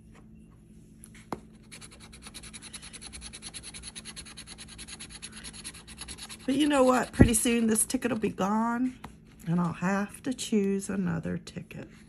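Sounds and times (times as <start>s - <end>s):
coin scratching lottery ticket: 1.7s - 7.1s.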